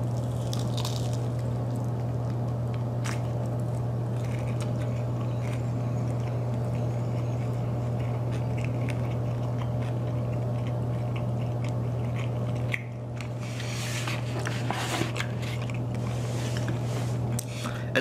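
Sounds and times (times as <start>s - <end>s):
person chewing with wet smacks: 0.0s - 13.4s
steady low hum: 0.0s - 18.0s.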